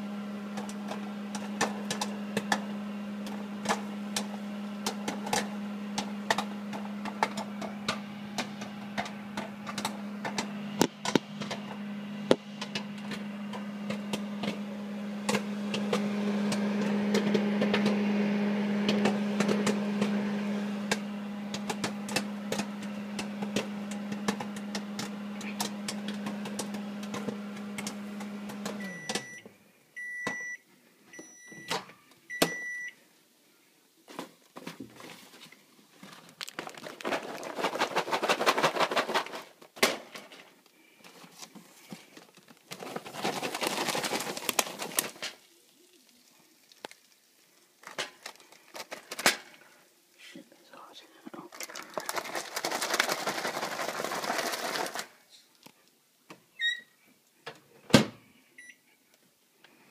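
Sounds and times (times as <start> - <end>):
popcorn popping: 0.0 - 29.3, 36.1 - 40.5, 41.5 - 49.8, 51.5 - 55.8
microwave oven humming: 0.0 - 33.0, 51.7 - 55.4.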